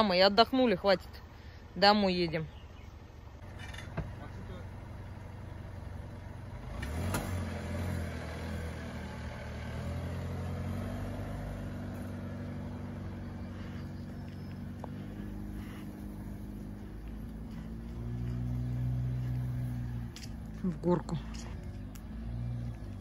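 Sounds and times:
car engine pulling away: 2.8s - 23.0s.

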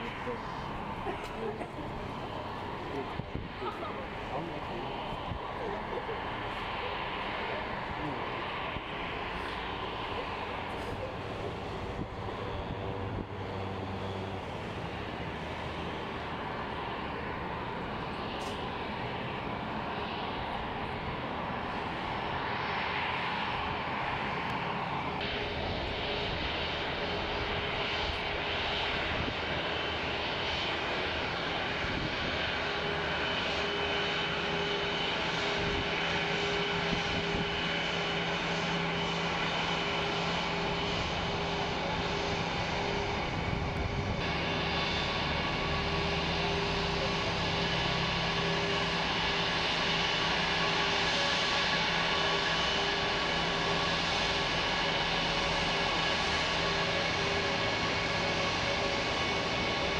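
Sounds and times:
jet engines humming: 0.0s - 59.9s.

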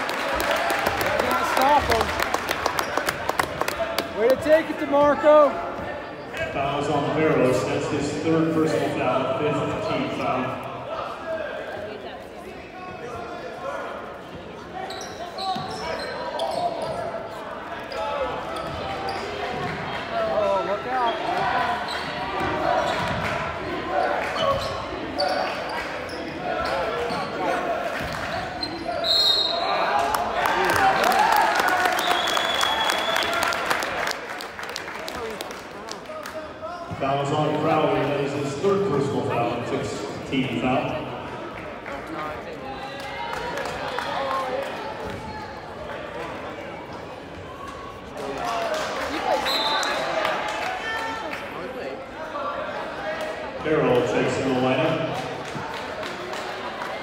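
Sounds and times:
crowd voices: 0.0s - 57.0s
referee whistle blasts: 29.0s - 29.7s, 32.0s - 33.3s, 49.4s - 50.0s.

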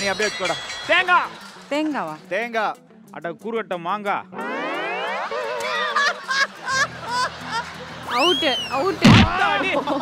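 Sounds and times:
wobbling warbling tone: 4.4s - 5.6s.

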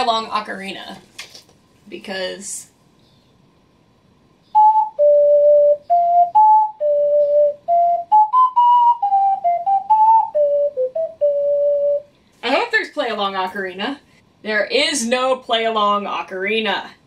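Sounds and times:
ocarina melody: 4.4s - 12.1s.

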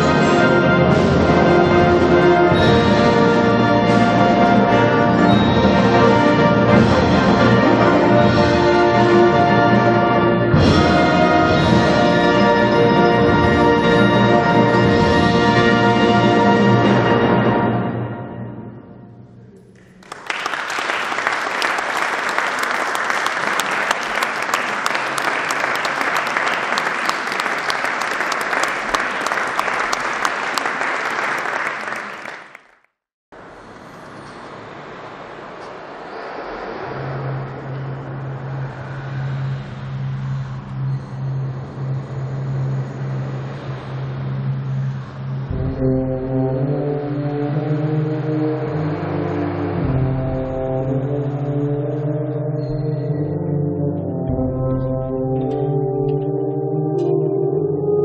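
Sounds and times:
brass sustained chords: 0.0s - 20.1s, 34.4s - 58.0s
audience applause: 19.7s - 32.8s.

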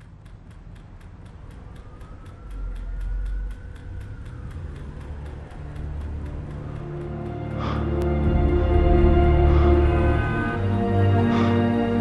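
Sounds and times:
low music drone: 0.0s - 12.0s
low traffic-like rumble: 0.0s - 12.0s
steady ticking: 0.0s - 12.0s
faint rising and falling tone: 0.1s - 7.4s.

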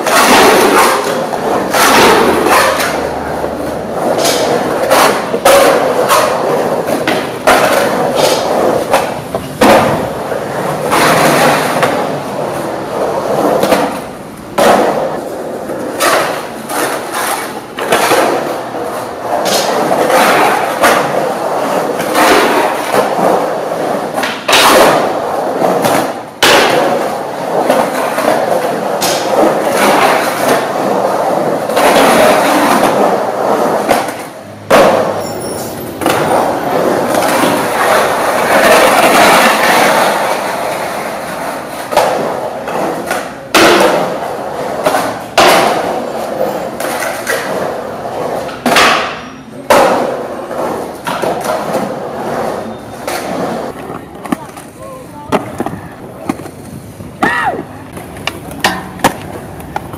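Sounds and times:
skateboard clacking on concrete: 0.0s - 59.9s
skateboard wheels rolling on concrete: 0.0s - 59.9s.

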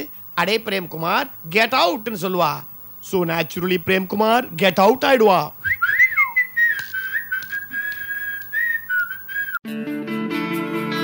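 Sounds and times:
person whistling a note: 5.7s - 9.6s
slide guitar music jingle: 9.6s - 11.0s.

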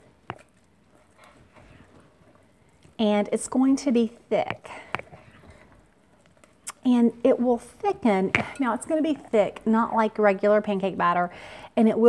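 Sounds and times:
spatula stirring batter in glass bowl: 0.0s - 6.6s.

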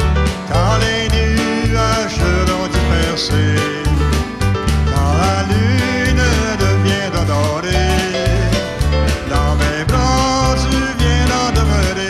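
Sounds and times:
acoustic guitar: 0.0s - 12.0s
bass guitar: 0.0s - 12.0s
drum beats: 0.0s - 12.0s
man singing: 0.2s - 12.0s.

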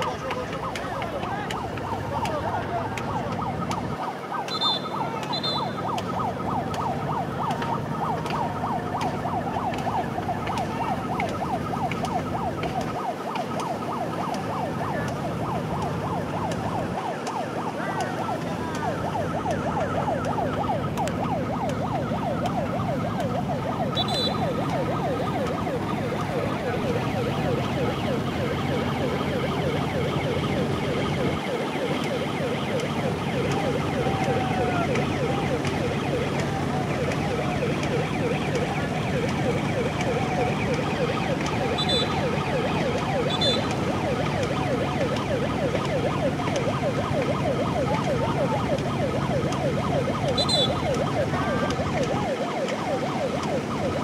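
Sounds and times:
crowd shouting and cheering: 33.4s - 37.9s.

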